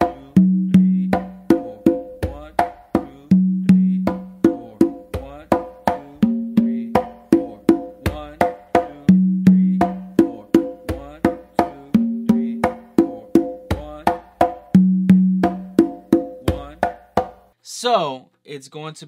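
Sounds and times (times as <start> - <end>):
congas played by hand: 0.0 - 17.6.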